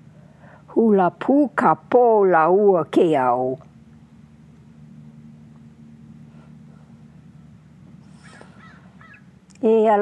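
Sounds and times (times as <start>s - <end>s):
low steady hum: 0.0s - 10.0s
faint short animal calls: 8.1s - 9.3s.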